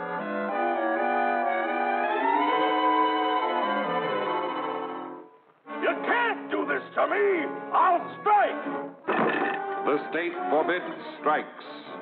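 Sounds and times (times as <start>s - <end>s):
orchestral cartoon music with brass: 0.0s - 9.0s, 9.8s - 12.0s.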